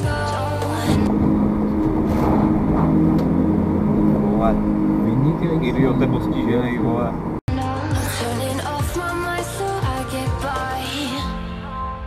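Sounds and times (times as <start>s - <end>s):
music: 0.0s - 2.1s, 7.5s - 12.0s
car engine and road noise: 0.0s - 11.1s
steady music-like tones: 0.0s - 12.0s.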